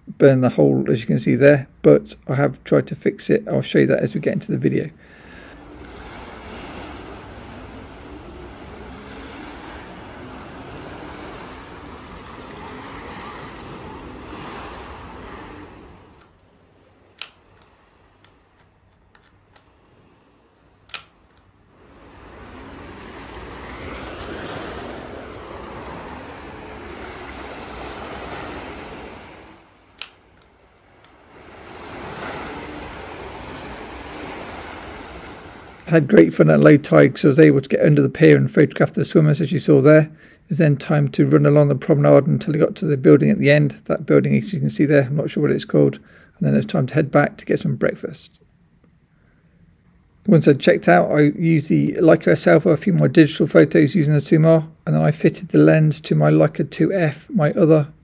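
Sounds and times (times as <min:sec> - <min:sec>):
sea waves on shingle beach: 0:04.6 - 0:37.2
sharp clicks: 0:17.2 - 0:19.7, 0:20.9 - 0:21.5, 0:30.0 - 0:31.2.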